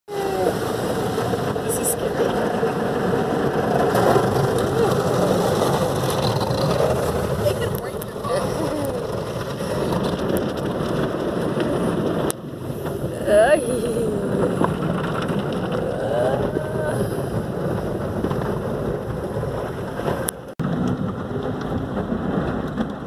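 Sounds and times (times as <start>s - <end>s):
water spraying over car windows: 0.1s - 19.9s.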